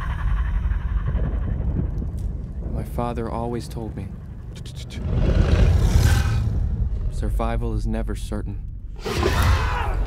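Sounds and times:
low rumble: 0.0s - 9.0s.

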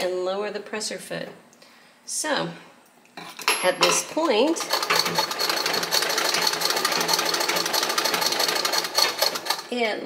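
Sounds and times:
treadle sewing machine clattering: 4.5s - 9.7s.

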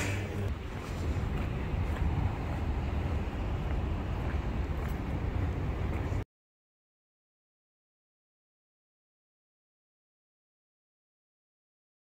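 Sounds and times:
traffic hum: 0.0s - 6.2s
wind on microphone: 0.0s - 6.2s.

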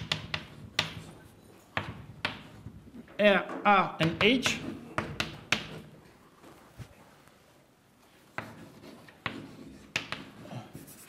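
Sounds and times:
chalk tapping on blackboard: 0.0s - 1.2s, 1.8s - 2.6s, 4.0s - 5.9s, 8.3s - 11.0s
chalk scraping: 8.4s - 11.0s.

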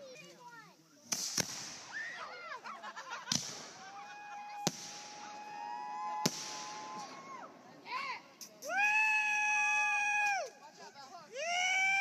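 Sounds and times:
fireworks bangs: 1.1s - 9.5s.

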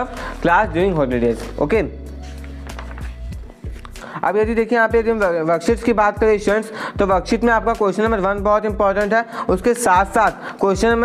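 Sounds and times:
pages being flipped: 1.2s - 4.0s.

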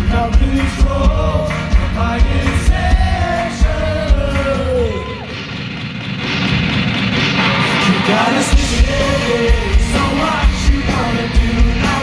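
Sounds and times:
live pop-rock band: 0.0s - 12.0s
person singing: 7.7s - 12.0s.

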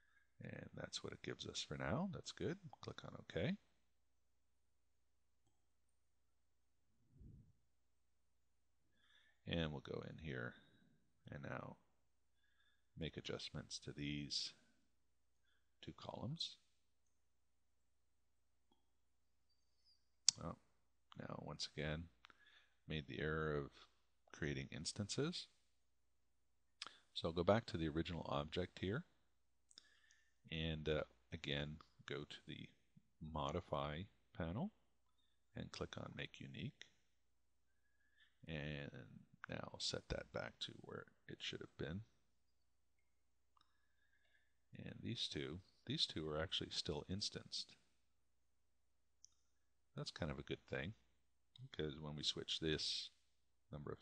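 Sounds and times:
man speaking: 0.4s - 3.6s, 9.5s - 10.6s, 11.3s - 11.8s, 13.0s - 14.6s, 15.8s - 16.6s, 20.3s - 22.2s, 22.9s - 25.6s, 27.2s - 29.1s, 30.5s - 34.7s, 35.6s - 36.8s, 38.5s - 42.1s, 44.8s - 47.8s, 50.0s - 51.0s, 51.6s - 54.0s.

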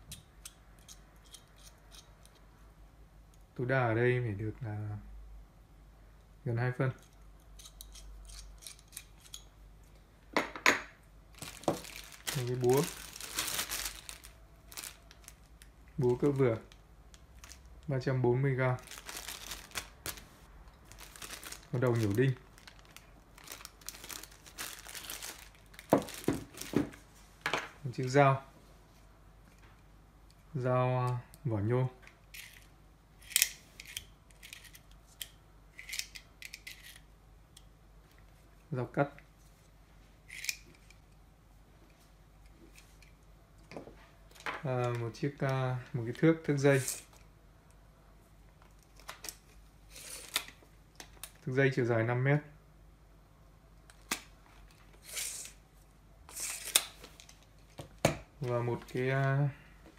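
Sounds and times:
wrench screw scraping and clicking: 0.4s - 2.4s, 7.0s - 9.5s.

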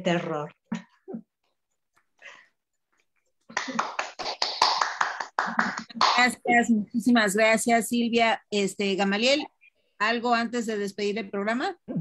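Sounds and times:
people clapping: 3.4s - 6.4s.

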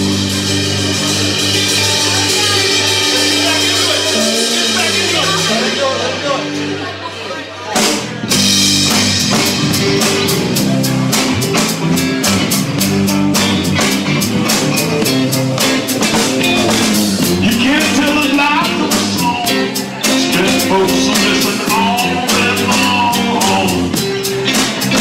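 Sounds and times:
live folk-rock band playing: 0.0s - 25.0s.

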